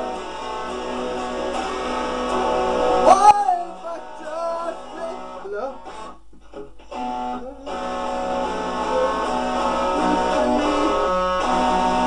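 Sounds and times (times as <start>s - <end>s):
guitar playing: 0.0s - 12.0s
person's voice: 3.0s - 5.8s.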